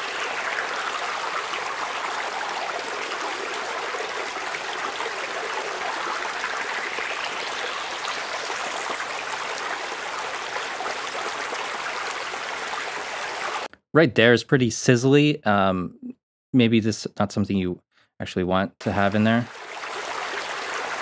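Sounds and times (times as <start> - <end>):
running water hiss: 0.0 - 13.7, 19.4 - 21.0.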